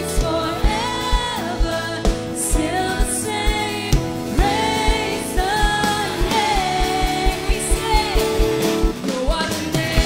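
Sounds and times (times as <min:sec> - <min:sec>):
bass guitar: 0:00.0 - 0:10.0
drums: 0:00.0 - 0:10.0.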